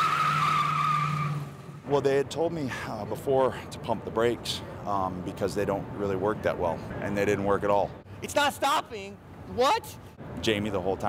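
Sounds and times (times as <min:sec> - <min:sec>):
tires squealing on concrete: 0:00.0 - 0:01.9.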